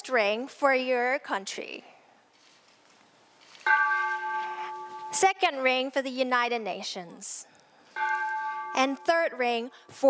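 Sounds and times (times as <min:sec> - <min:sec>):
bell struck with wooden mallet: 0:08.0 - 0:09.2.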